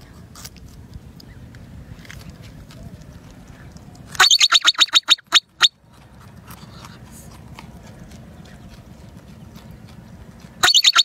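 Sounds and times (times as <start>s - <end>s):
marmot shrill alarm calls: 4.2s - 5.7s, 10.6s - 11.0s.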